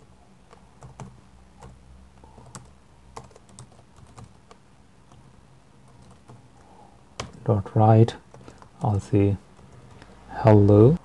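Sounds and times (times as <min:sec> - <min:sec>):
faint keyboard typing: 0:00.3 - 0:10.8.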